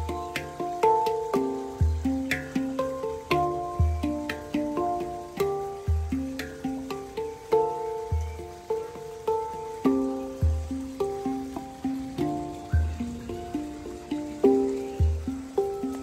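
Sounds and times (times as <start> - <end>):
deep low handpan note: 0.0 - 16.0
handpan melody: 0.0 - 16.0.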